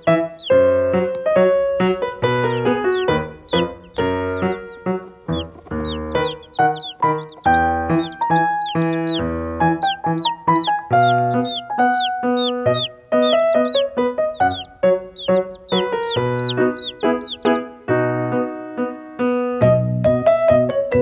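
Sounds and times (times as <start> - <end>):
baby chicks peeping: 0.0 - 18.9
background music: 0.0 - 21.0.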